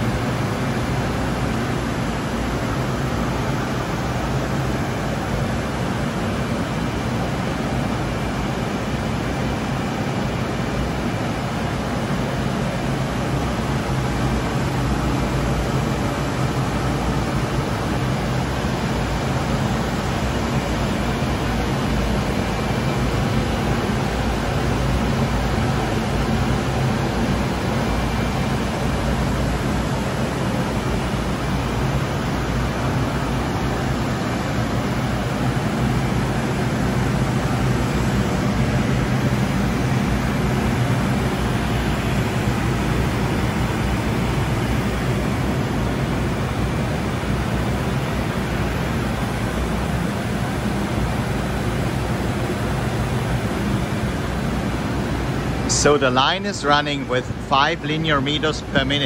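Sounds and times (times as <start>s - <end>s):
coating machine running: 0.0s - 59.0s
low machine hum: 0.0s - 59.0s.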